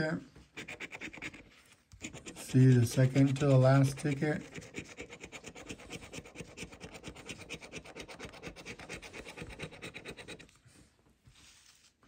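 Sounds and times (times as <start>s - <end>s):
coin scratching lottery ticket: 0.6s - 10.5s.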